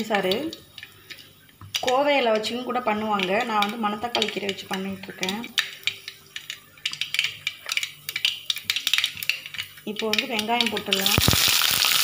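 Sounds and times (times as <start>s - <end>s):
spices crackling in hot oil: 0.0s - 12.0s.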